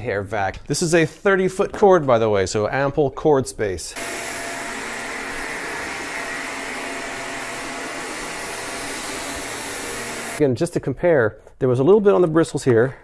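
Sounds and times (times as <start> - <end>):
vacuum cleaner running on carpet: 4.0 - 10.4.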